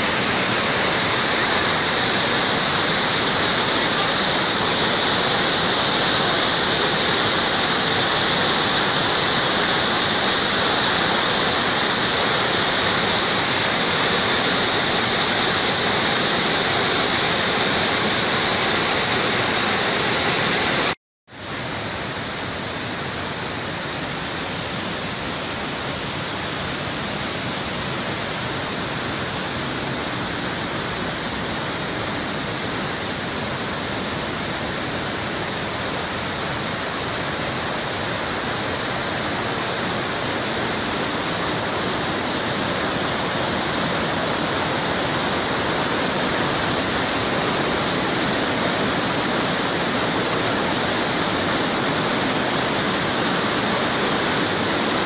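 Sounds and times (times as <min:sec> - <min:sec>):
river water rushing over rapids: 0:00.0 - 0:55.0.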